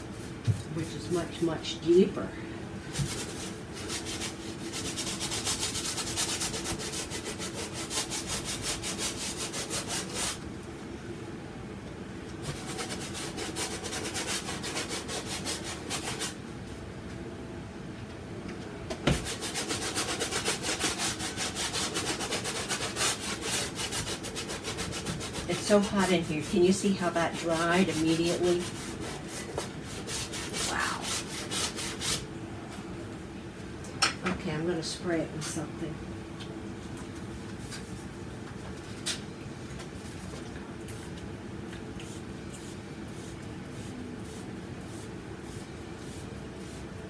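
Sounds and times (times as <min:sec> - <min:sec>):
bristle brush scrubbing canvas: 0:02.9 - 0:10.4, 0:12.4 - 0:16.4, 0:19.1 - 0:32.2, 0:42.0 - 0:46.9.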